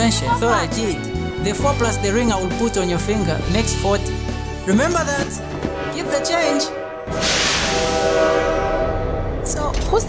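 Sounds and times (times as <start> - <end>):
locomotive air horn: 5.8 - 9.6.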